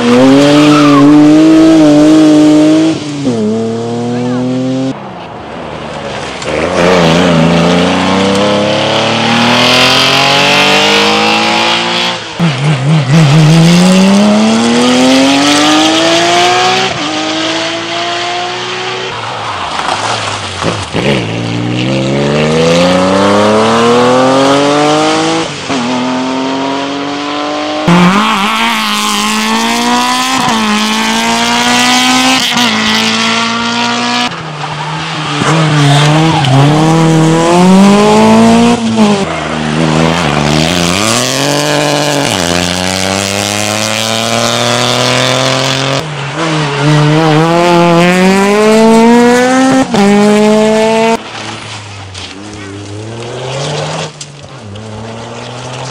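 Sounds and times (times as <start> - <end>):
rally cars passing at speed: 0.0 - 55.9.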